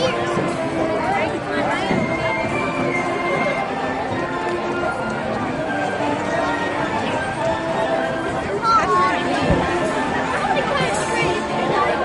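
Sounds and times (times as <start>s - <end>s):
crowd chatter: 0.0s - 12.0s
marching band playing: 0.0s - 12.0s.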